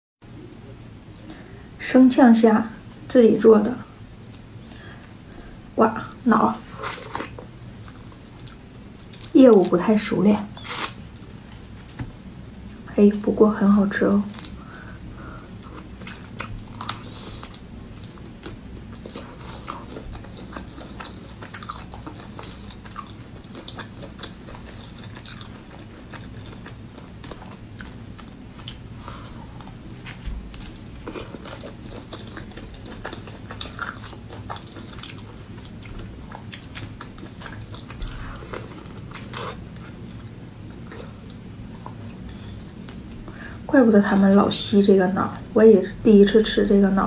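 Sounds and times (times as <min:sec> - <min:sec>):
low steady hum: 0:00.2 - 0:47.0
person sucking and chewing shrimp: 0:14.4 - 0:43.5.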